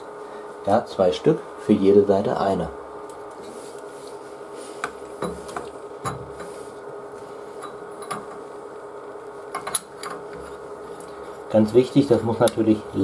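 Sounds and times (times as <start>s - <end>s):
steady background hum: 0.0s - 13.0s
light clicks and knocks of fittings: 7.6s - 8.4s, 9.5s - 11.2s.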